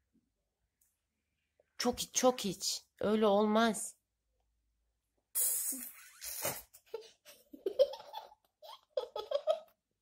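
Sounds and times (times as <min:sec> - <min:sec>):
girl giggling: 0:05.8 - 0:09.8.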